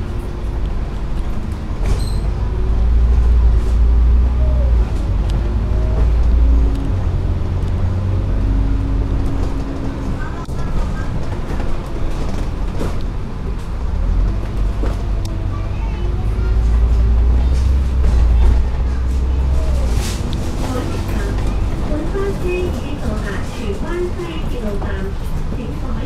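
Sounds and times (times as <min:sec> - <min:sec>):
bus engine and road noise: 0:00.0 - 0:26.0.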